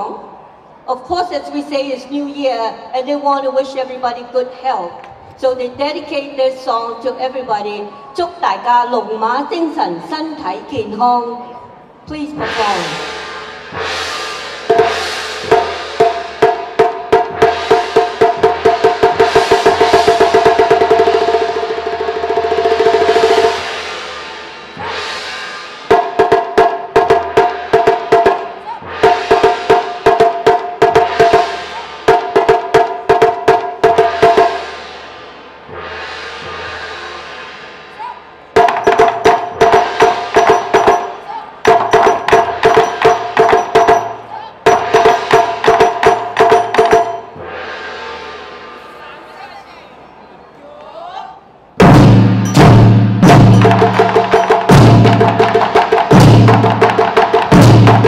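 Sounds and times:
drum ensemble playing: 12.0s - 49.1s, 51.6s - 58.0s.

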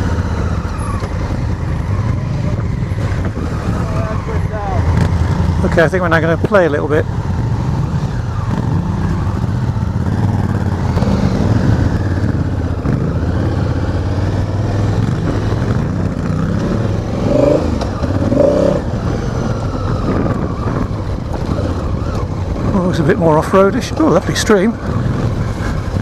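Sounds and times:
motorcycle engine running: 0.0s - 26.0s.

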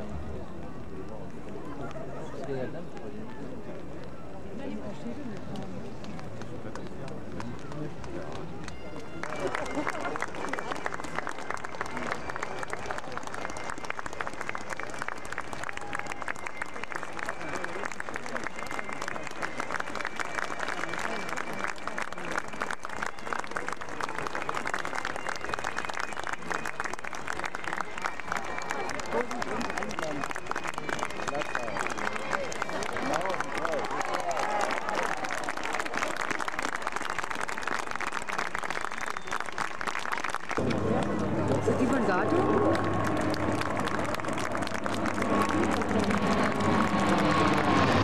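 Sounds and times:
murmur of voices: 0.0s - 48.0s
crowd applauding: 6.0s - 48.0s.

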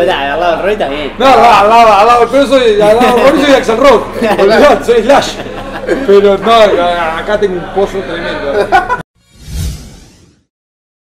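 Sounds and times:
whoosh with low boom: 9.2s - 10.5s.

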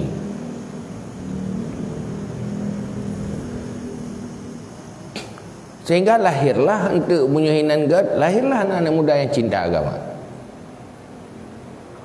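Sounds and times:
low engine hum: 0.0s - 5.1s.

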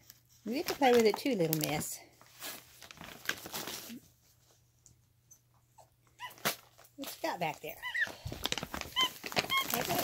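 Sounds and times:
gift bag crinkling: 0.5s - 4.2s, 6.3s - 10.0s
monkey squeaking: 9.0s - 10.0s.

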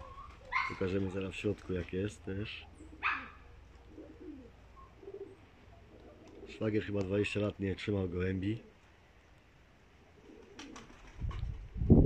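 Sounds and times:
pigeons cooing: 0.0s - 7.0s, 10.0s - 11.1s.

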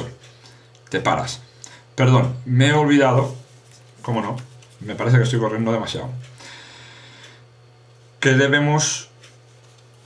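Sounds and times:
low steady hum: 0.0s - 10.0s
playing cards sliding: 3.2s - 5.0s.

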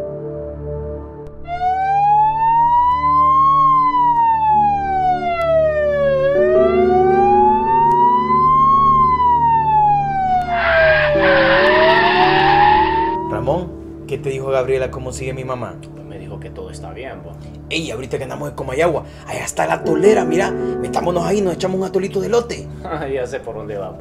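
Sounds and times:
soft background music: 0.0s - 24.0s
ambulance siren wailing: 1.4s - 14.0s.

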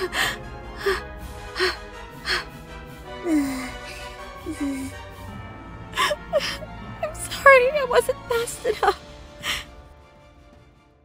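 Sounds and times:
woman gasping tearfully: 0.0s - 2.5s, 3.3s - 5.0s
soft background music: 0.0s - 11.0s.

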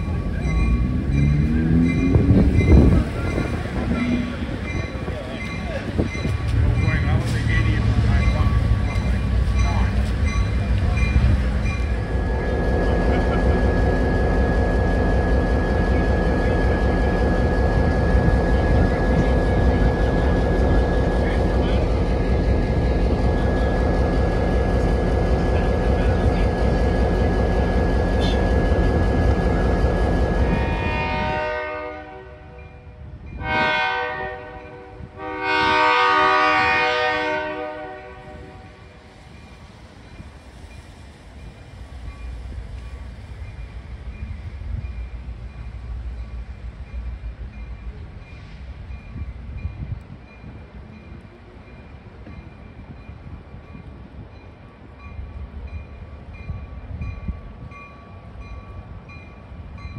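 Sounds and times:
diesel locomotive engine rumble: 0.0s - 59.9s
train air horn blowing: 30.4s - 32.6s, 33.4s - 38.8s.

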